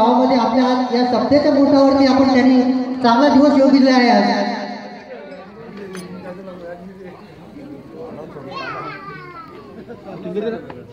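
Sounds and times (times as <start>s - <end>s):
crowd chatter: 0.0s - 10.9s
child calling out: 8.5s - 9.8s.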